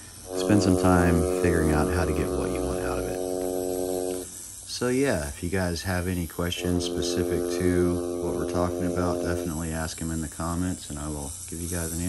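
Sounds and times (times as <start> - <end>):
tattoo machine buzzing: 0.0 - 4.7, 6.0 - 12.0.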